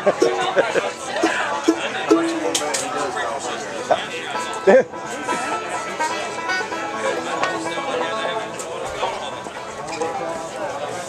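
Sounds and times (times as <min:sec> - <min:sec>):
bluegrass band playing: 0:00.0 - 0:11.0
crowd chatter: 0:00.0 - 0:11.0.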